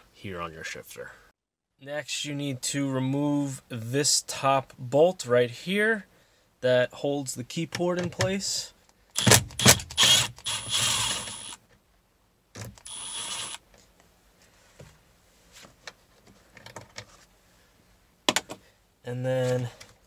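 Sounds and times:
cordless driver spinning: 0:10.0 - 0:11.6, 0:12.8 - 0:13.6.

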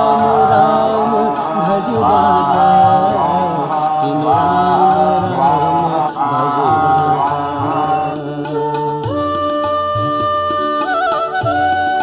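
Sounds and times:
voice chanting a mantra: 0:00.0 - 0:08.7.

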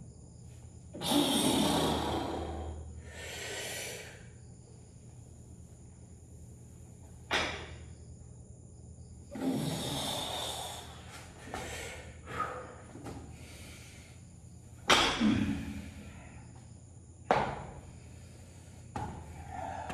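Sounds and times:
person breathing hard: 0:01.0 - 0:04.5, 0:09.4 - 0:14.5, 0:18.0 - 0:19.9
barbell thudding onto foam mats: 0:14.8 - 0:15.6, 0:17.3 - 0:17.8, 0:18.9 - 0:19.3.

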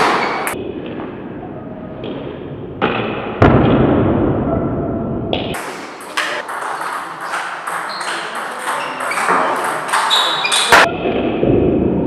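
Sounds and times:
table tennis ball hits: 0:05.4 - 0:10.9.

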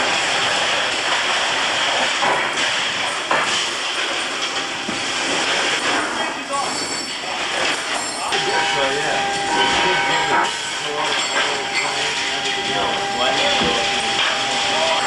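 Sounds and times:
steady whine: 0:00.0 - 0:15.0.

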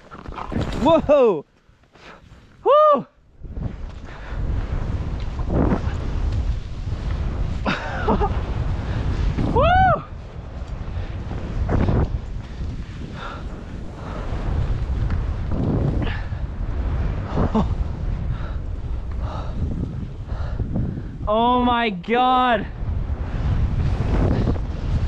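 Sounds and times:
wind buffeting microphone: 0:02.5 - 0:25.0
person whooping: 0:02.6 - 0:03.2, 0:09.5 - 0:10.2.

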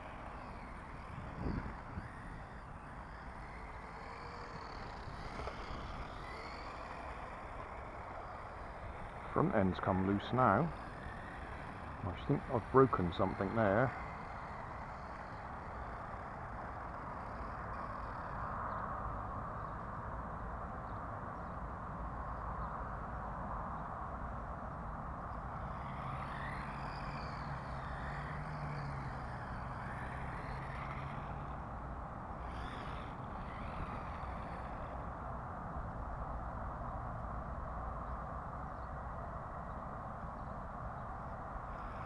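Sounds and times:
small electric motor whine: 0:00.0 - 0:42.0
steady outdoor hiss: 0:00.0 - 0:42.0.

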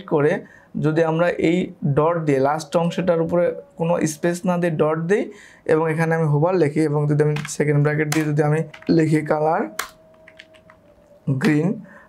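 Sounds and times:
keyboard key clicks: 0:07.4 - 0:09.0.

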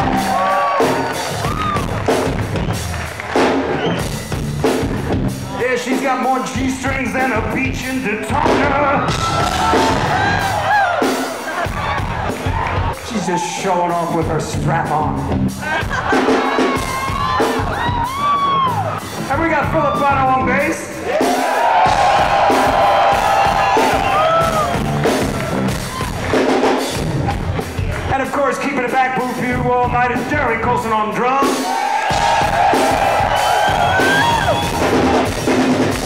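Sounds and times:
audience cheering and whooping: 0:00.0 - 0:04.2, 0:08.5 - 0:14.1, 0:15.6 - 0:26.6, 0:31.6 - 0:36.0
live music with sliding notes: 0:00.0 - 0:36.0.

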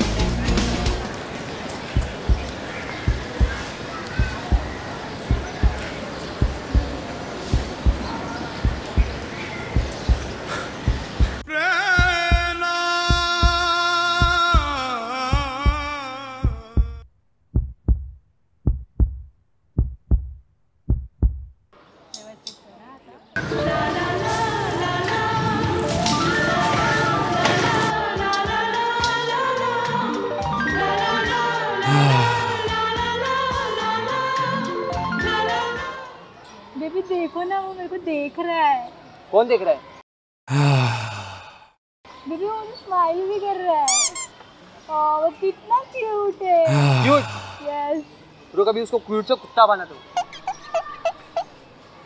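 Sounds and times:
heartbeat thumps: 0:01.9 - 0:21.7
man sighing: 0:11.4 - 0:17.1, 0:31.8 - 0:32.6, 0:40.5 - 0:41.8, 0:46.7 - 0:47.7.

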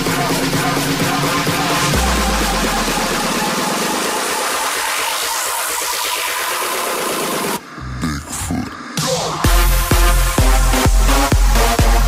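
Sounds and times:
electro house dance music: 0:00.0 - 0:12.0.

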